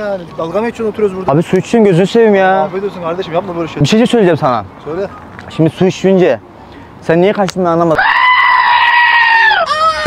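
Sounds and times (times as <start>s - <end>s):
high-pitched scream of fright: 8.0s - 10.0s.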